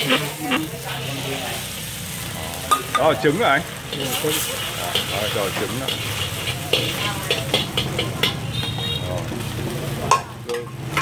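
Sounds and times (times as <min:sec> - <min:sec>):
metal ladle scraping a wok: 0:00.0 - 0:09.5
eggs sizzling in hot oil: 0:00.0 - 0:11.0
gas burner rumbling: 0:00.0 - 0:11.0.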